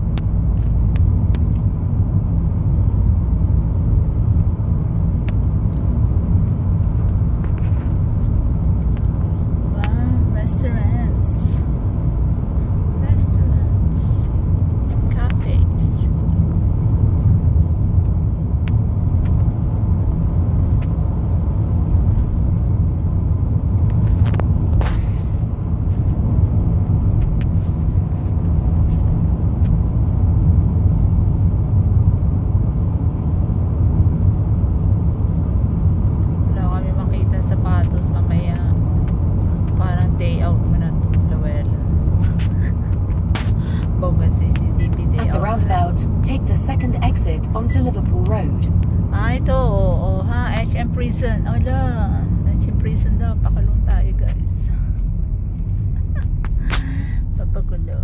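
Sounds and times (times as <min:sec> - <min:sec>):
car road and engine noise: 0:00.0 - 0:58.0.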